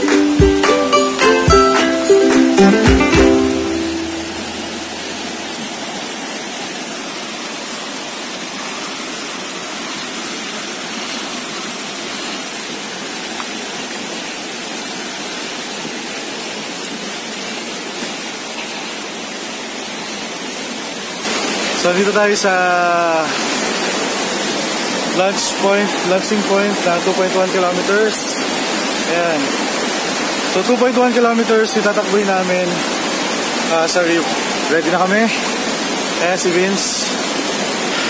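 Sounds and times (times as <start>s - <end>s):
ukulele music: 0.0s - 5.0s
river rapids rushing: 0.0s - 38.0s.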